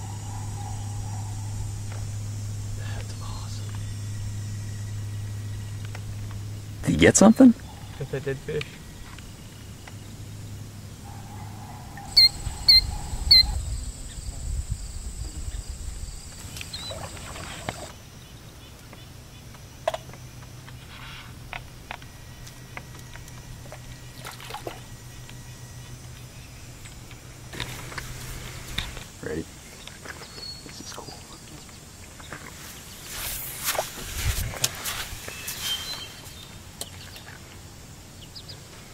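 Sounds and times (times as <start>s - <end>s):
short high chirps: 12.2s - 13.6s.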